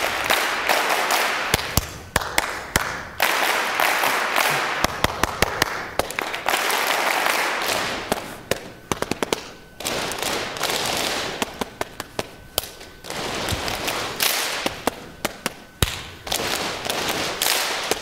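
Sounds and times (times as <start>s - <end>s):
audience clapping: 0.0s - 12.2s, 16.3s - 18.0s
person clapping a rhythm: 0.0s - 18.0s.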